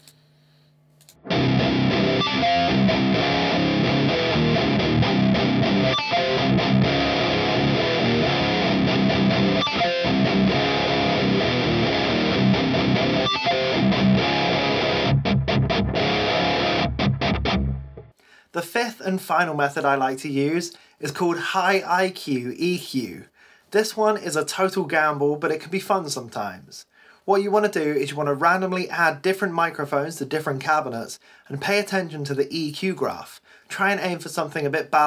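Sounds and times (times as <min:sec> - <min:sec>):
faint amp hum: 0:00.0 - 0:02.3
distorted electric guitar riff: 0:01.1 - 0:18.2.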